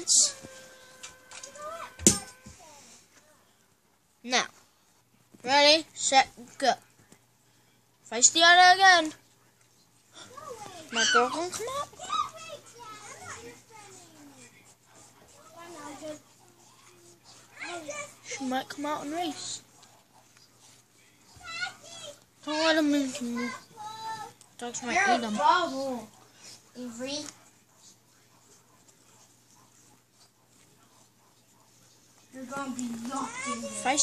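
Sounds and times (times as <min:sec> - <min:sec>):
children chattering: 0:00.0 - 0:03.0, 0:10.1 - 0:19.8, 0:32.3 - 0:34.0
faint light scratching: 0:00.0 - 0:03.2.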